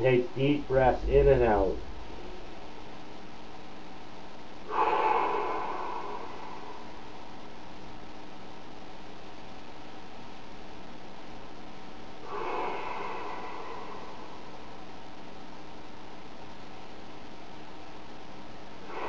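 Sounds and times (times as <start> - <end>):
steady background hiss: 0.0 - 19.0
man breathing through nose: 4.7 - 7.1, 12.2 - 14.8.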